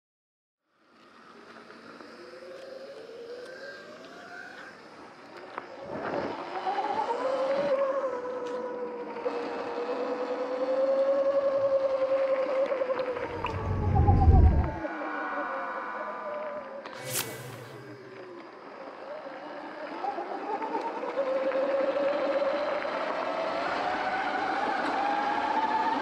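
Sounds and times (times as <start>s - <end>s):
electric motorbike motor whine: 0.8s - 14.8s, 17.6s - 26.0s
loud low rumble: 13.2s - 14.8s.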